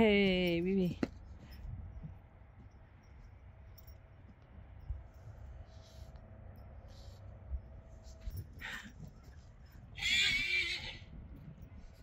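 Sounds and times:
horse whinnying: 9.9 - 11.1.

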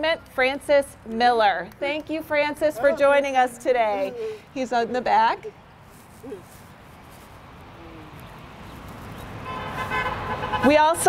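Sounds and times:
passing vehicle rumble: 6.8 - 11.0
car horn: 9.4 - 11.0.

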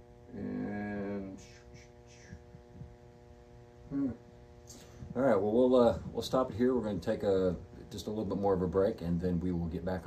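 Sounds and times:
faint steady tonal hum: 0.0 - 10.0
man saying hmm: 3.8 - 4.3.

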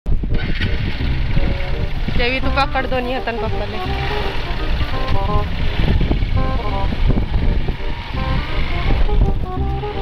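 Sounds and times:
engine and road rumble: 0.1 - 10.0.

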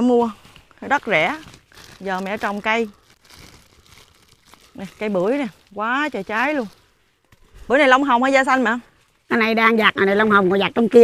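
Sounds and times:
plastic bags crinkling: 0.3 - 7.4.

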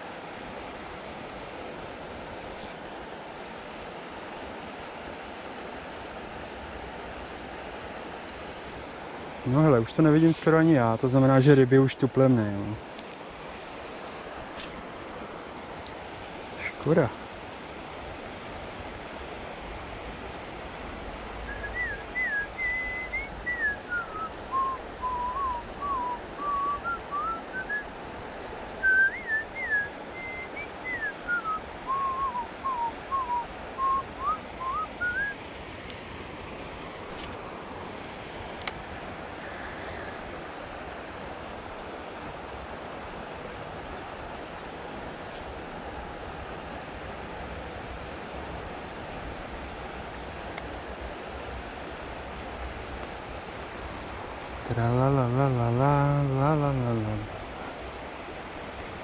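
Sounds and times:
river rushing: 0.0 - 59.0
person whistling a tune: 21.5 - 27.8, 28.8 - 35.4.

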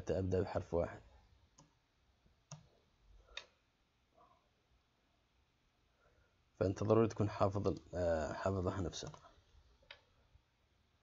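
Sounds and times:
faint keyboard clicks: 2.4 - 3.6, 8.9 - 10.1.

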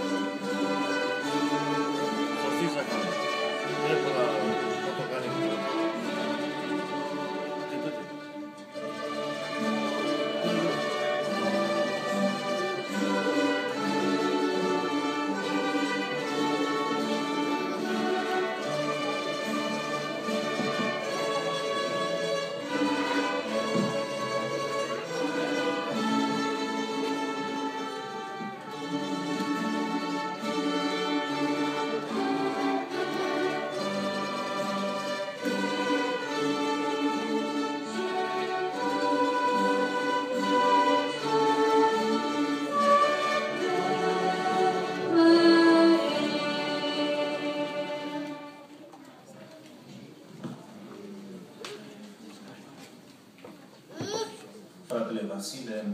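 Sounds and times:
bowed strings sustained notes: 0.0 - 48.7.

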